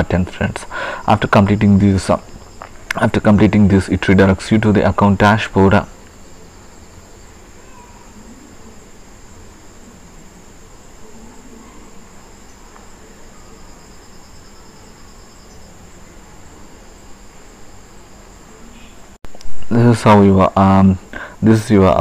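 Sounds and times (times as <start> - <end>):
hiss with low hum: 0.0 - 22.0.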